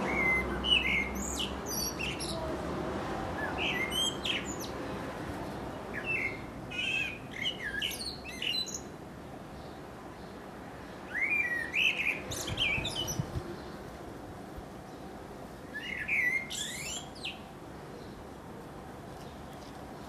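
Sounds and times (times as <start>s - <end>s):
blackbird singing: 0.0s - 2.5s, 3.4s - 4.8s, 5.9s - 8.9s, 11.0s - 13.8s, 15.6s - 18.2s.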